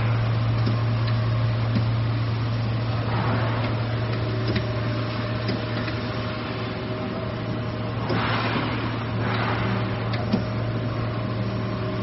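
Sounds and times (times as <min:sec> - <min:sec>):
high steady whine: 0:00.0 - 0:12.0
machine low drone: 0:00.0 - 0:12.0.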